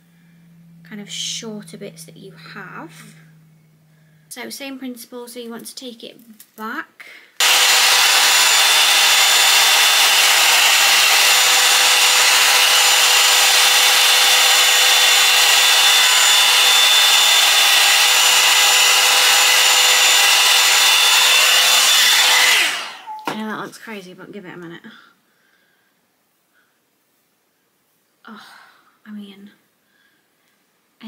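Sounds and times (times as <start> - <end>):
hot-air brush blowing: 7.4 - 23.2.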